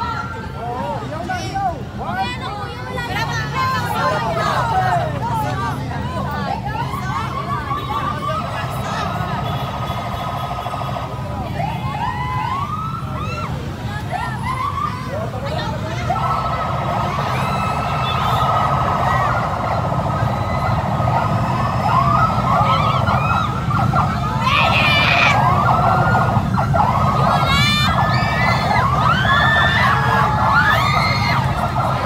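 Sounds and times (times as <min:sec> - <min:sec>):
police sirens wailing: 0:03.0 - 0:32.0
low rumble: 0:16.0 - 0:32.0.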